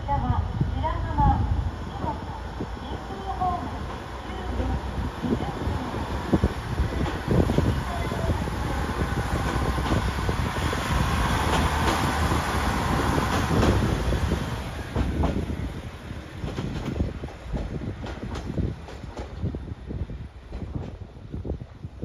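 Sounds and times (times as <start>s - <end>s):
diesel railcar engine running: 0.1s - 21.3s.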